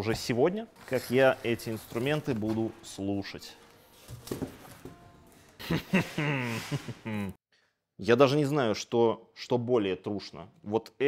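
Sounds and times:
plastic wrapping crinkling: 0.7 - 5.6.

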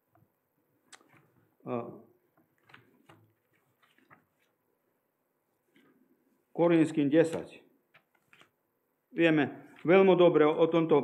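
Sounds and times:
thin pages being turned: 2.6 - 4.6, 7.9 - 8.6.

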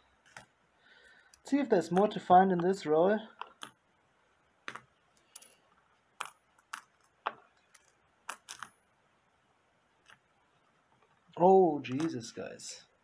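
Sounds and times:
coins clicking together: 7.7 - 8.8.

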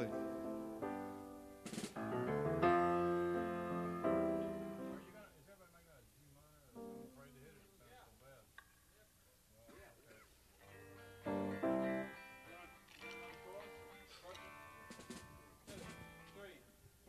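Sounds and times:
guitar playing: 0.0 - 5.2, 6.8 - 7.3, 10.6 - 16.5.

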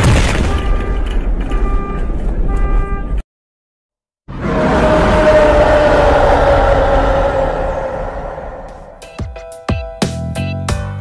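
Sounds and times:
loud boom with rumble: 0.0 - 2.5.

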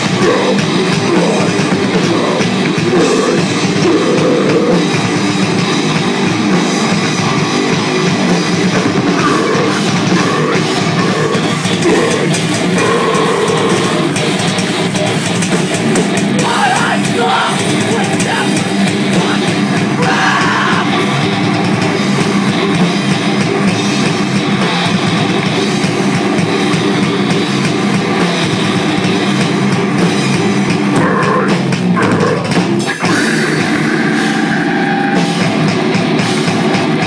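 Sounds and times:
drums: 0.0 - 37.0
electric guitars: 0.0 - 37.0.

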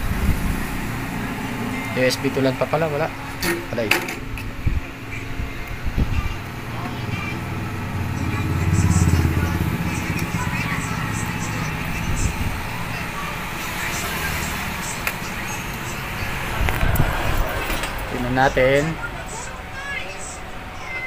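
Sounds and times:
low vehicle rumble: 0.0 - 21.0
steady background noise: 0.0 - 21.0.

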